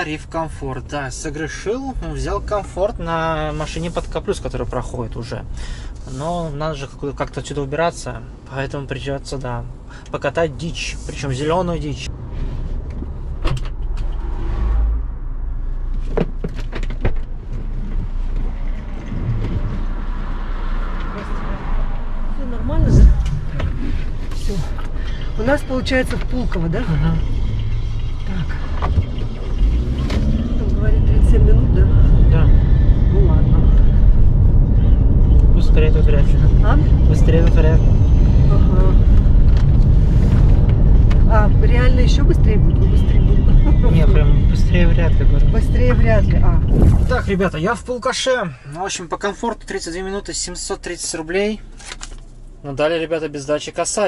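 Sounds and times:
low rumble inside car: 0.0s - 54.0s.

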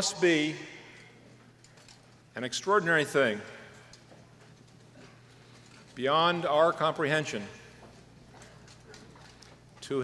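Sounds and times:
man speaking amplified: 0.0s - 1.0s, 2.3s - 3.8s, 6.0s - 7.8s, 9.8s - 10.0s.

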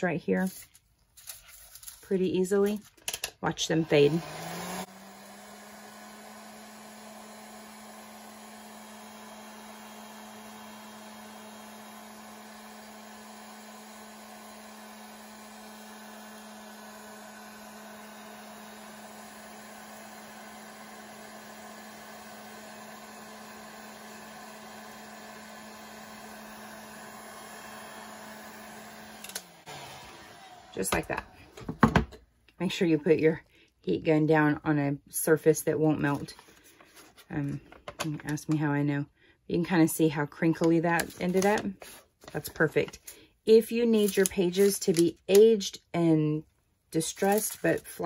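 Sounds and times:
heat gun humming: 1.8s - 31.8s, 40.6s - 43.2s, 43.8s - 45.6s, 47.0s - 48.0s.

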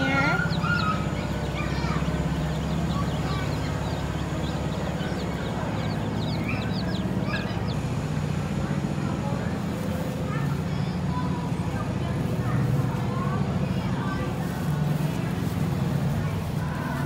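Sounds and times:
steady low rumble: 0.0s - 9.2s
baby chicks peeping: 0.0s - 11.5s, 12.2s - 17.0s.

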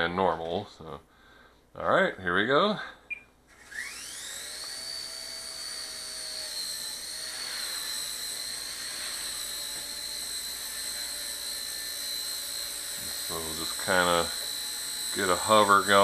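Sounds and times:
toy helicopter electric whine: 3.5s - 16.0s.

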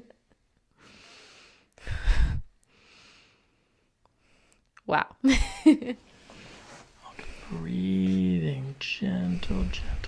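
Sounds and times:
woman breathing: 0.7s - 4.7s, 6.0s - 7.6s.

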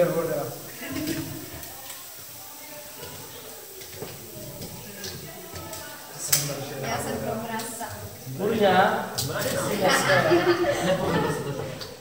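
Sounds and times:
faint murmuring voices: 0.0s - 12.0s.

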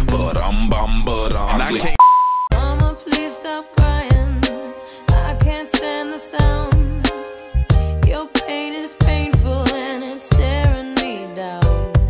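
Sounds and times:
electronic beep: 2.0s - 2.5s
music with voice: 2.5s - 12.0s.

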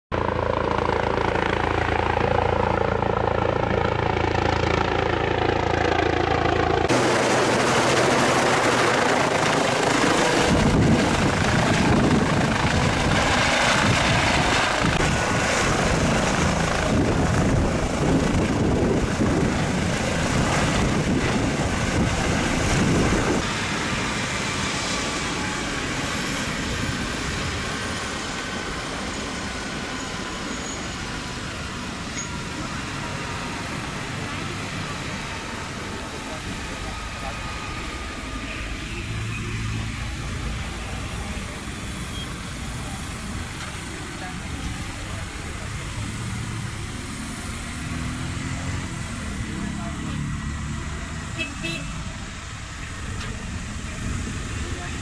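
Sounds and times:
helicopter engine: 0.1s - 55.0s
rotor blades pulsing: 0.2s - 48.0s
high turbine whine: 0.2s - 55.0s.

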